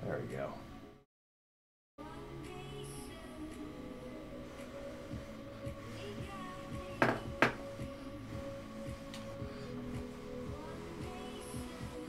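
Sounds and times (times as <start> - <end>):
quiet background music: 0.0 - 1.0, 2.0 - 12.0
knocks on a workbench: 7.0 - 7.7.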